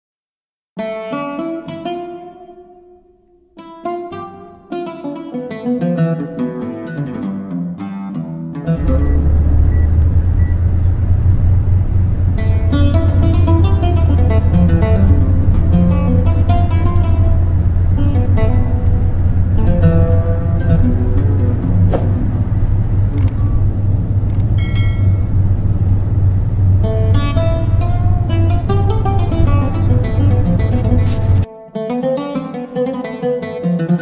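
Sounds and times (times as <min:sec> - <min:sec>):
acoustic guitar music: 0:00.8 - 0:34.0
car engine and tyre noise: 0:08.8 - 0:31.5
road noise: 0:08.8 - 0:31.5.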